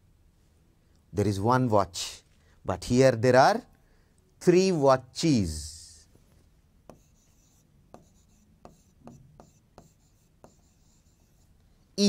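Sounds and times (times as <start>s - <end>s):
pen tapping and scratching on board: 6.8s - 11.5s.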